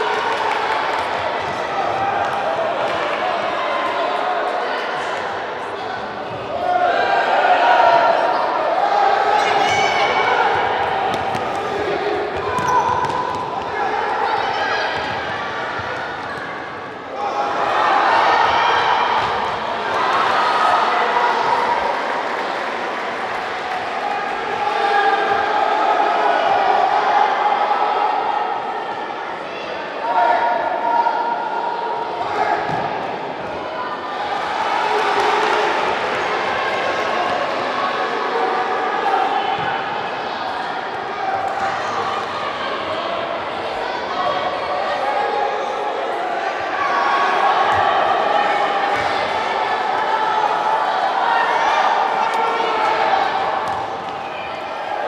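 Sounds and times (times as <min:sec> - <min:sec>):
crowd shouting and calling: 0:00.0 - 0:55.0.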